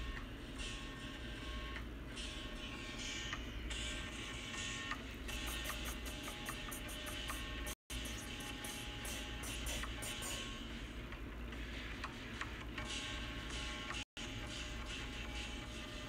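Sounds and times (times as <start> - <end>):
fast even ticking beat: 5.3 - 10.6.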